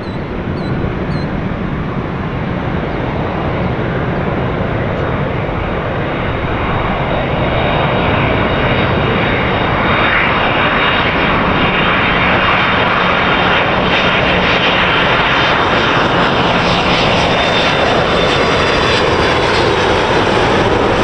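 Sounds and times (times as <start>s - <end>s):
jet engines roaring: 0.0s - 21.0s.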